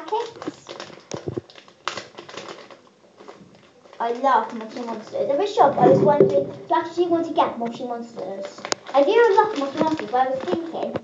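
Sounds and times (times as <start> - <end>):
plastic toys tapping and rustling: 0.0 - 5.2, 8.7 - 11.0.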